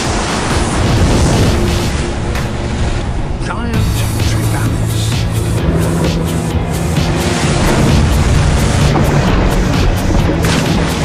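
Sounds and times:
background music: 0.0s - 11.0s
water surging and splashing: 0.0s - 11.0s.

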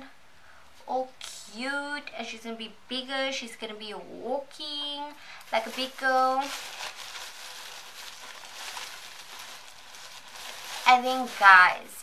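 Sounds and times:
cloth rustling: 5.4s - 11.8s.

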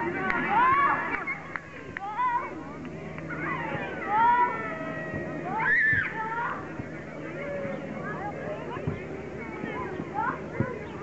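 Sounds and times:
children shouting: 0.0s - 2.6s, 3.3s - 11.0s.

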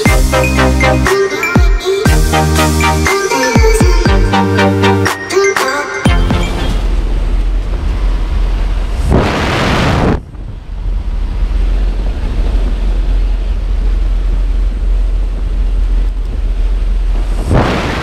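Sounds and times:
airplane engine drone: 6.1s - 18.0s
wind rushing on microphone: 7.7s - 18.0s.

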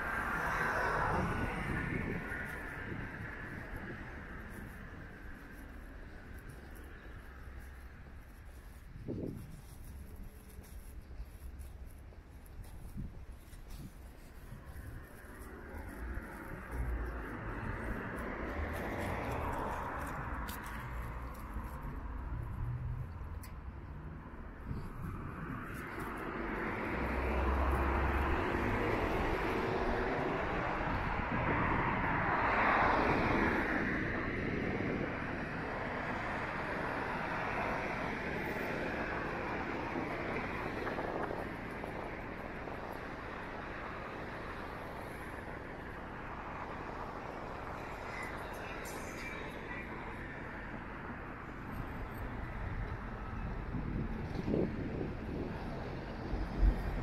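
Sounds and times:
cars passing: 0.0s - 57.0s.

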